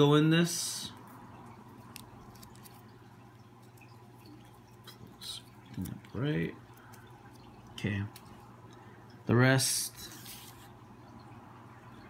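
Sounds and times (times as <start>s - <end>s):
low steady hum: 0.0s - 12.0s
paper crinkling: 1.8s - 3.0s.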